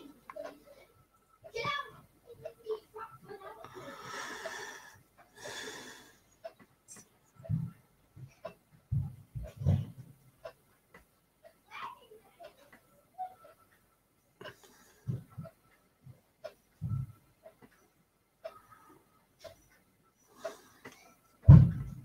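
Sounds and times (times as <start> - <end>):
breathy exhalations: 3.7 - 6.3.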